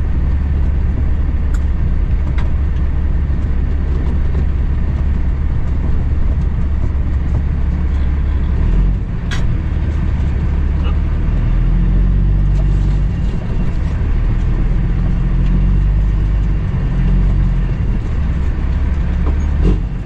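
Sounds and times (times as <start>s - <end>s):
diesel truck engine rumbling: 0.0s - 20.0s.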